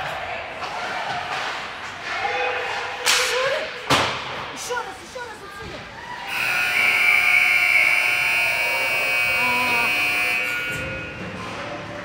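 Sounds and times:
scoreboard horn blast: 6.3 - 11.1.

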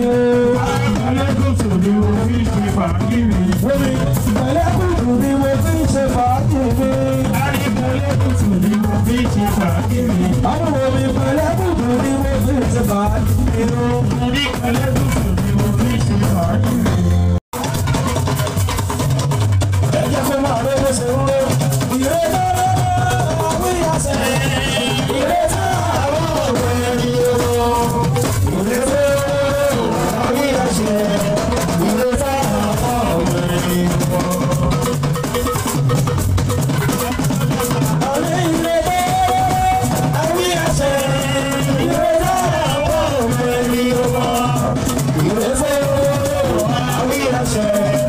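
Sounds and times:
hand drums and rattle: 0.0 - 48.0
person singing lead melody: 20.4 - 35.1, 37.6 - 48.0.

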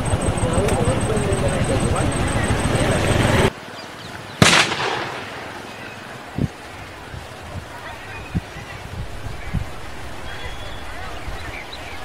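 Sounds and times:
crowd noise outdoors: 0.0 - 12.0
firecracker bang: 4.4 - 5.6.

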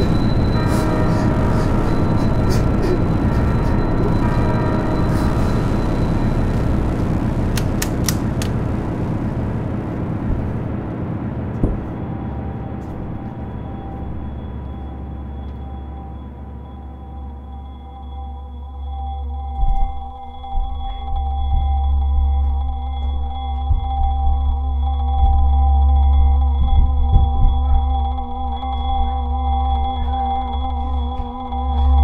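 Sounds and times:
low ambient drone: 0.0 - 32.0
sharp clicks: 7.5 - 8.7.

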